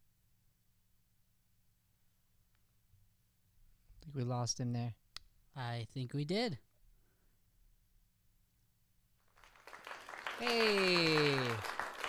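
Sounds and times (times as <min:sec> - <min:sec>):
recorded applause: 0:09.3 - 0:12.0.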